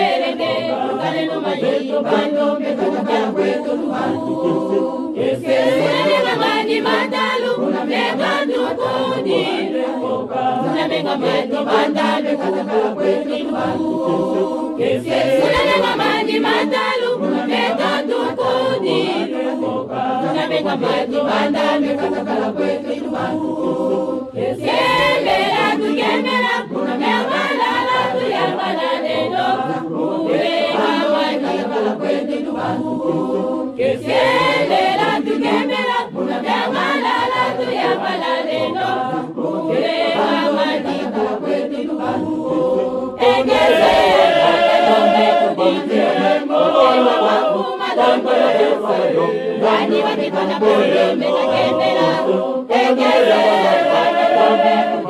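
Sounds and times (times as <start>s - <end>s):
choir singing chant-like song: 0.0s - 55.0s.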